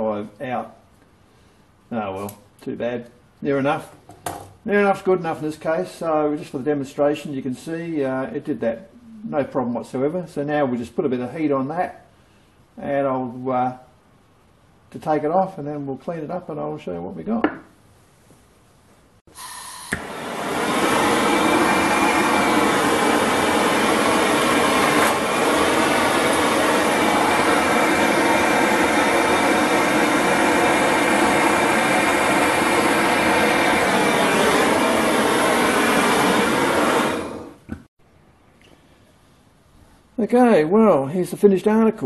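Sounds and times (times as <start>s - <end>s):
gas torch flame hissing: 19.4s - 37.8s
gas torch click: 19.7s - 20.1s.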